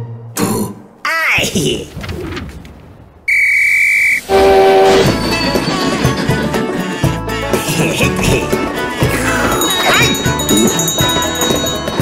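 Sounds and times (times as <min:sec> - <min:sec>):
high train whistle: 0:03.3 - 0:05.4
steam locomotive whistle: 0:03.3 - 0:05.4.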